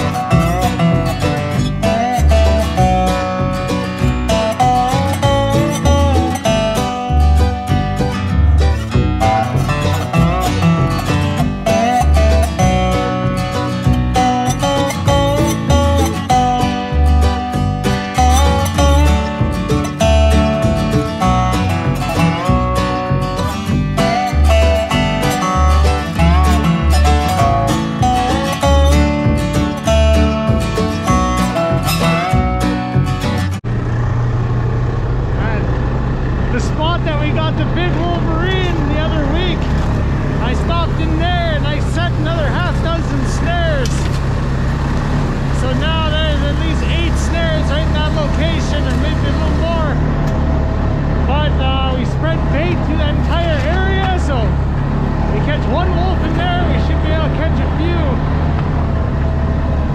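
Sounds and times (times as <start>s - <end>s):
acoustic guitar music: 0.0s - 59.9s
engine idling: 0.0s - 59.9s.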